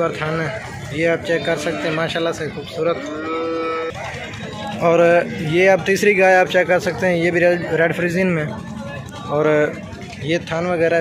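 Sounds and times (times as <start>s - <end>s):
cow mooing: 3.0s - 3.9s.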